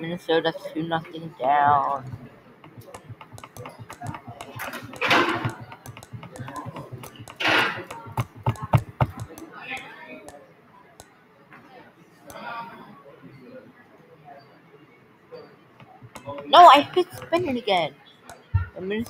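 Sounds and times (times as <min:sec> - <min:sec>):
person's voice: 0:00.0 - 0:02.2, 0:02.8 - 0:09.4, 0:16.0 - 0:17.9
spinner wheel ticking: 0:01.7 - 0:09.5, 0:15.8 - 0:17.7.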